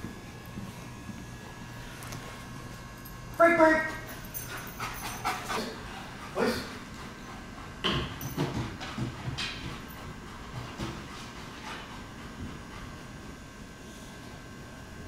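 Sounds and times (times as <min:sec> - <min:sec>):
dog paws thumping on rubber matting: 0:07.0 - 0:13.2.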